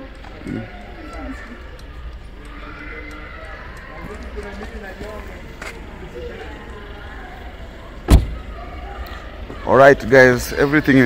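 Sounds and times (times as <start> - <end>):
car door slamming: 8.0 - 8.6.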